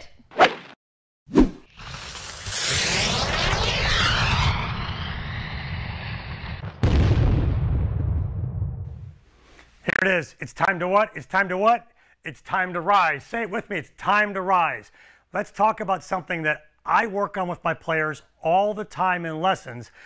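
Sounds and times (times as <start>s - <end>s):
swirling fire-like whoosh: 1.6s - 6.9s
deep rumbling boom: 1.9s - 9.2s.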